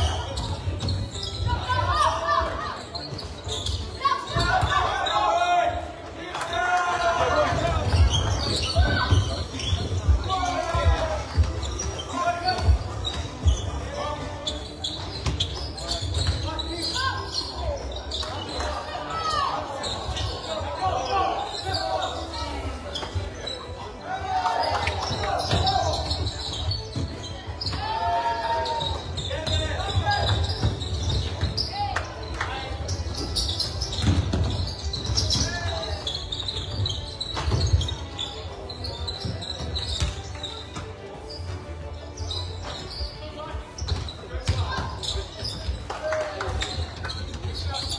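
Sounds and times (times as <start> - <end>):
shoe squeaks: 0.0 - 5.4, 7.3 - 45.9, 46.6 - 47.9
voices in a hall: 0.0 - 47.9.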